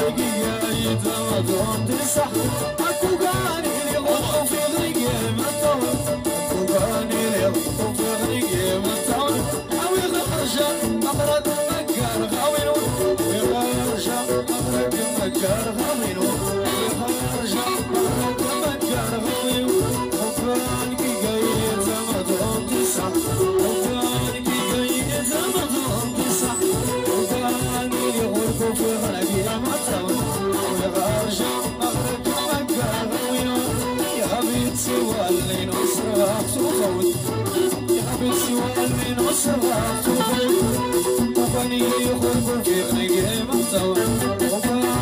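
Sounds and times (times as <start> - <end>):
drum kit: 0.0 - 45.0
electric guitar: 0.0 - 45.0
keyboard: 0.0 - 45.0
live band playing party music: 0.0 - 45.0.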